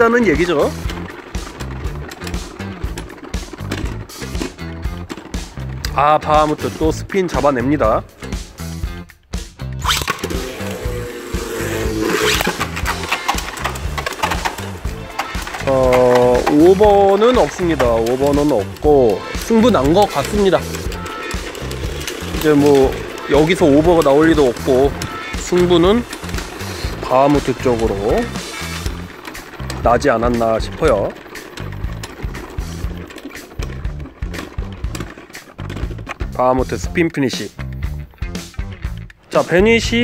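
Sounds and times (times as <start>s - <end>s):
spinning tops whirring and scraping: 0.0s - 9.0s, 9.7s - 40.0s
background music with steady beat: 0.0s - 40.0s.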